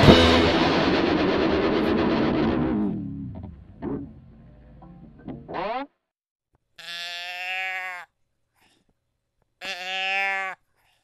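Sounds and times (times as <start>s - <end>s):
distorted guitar: 0.0s - 6.0s
long bleat-like calls: 6.8s - 8.1s, 9.6s - 10.6s.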